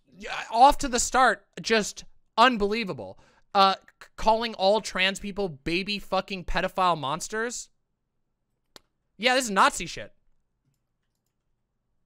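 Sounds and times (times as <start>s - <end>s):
person speaking: 0.0s - 7.7s, 9.2s - 10.2s
faint clicks: 10.3s - 11.5s.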